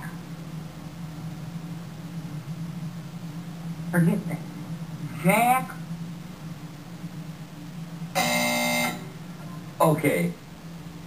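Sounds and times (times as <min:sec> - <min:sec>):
game show buzzer: 0:08.2 - 0:09.1.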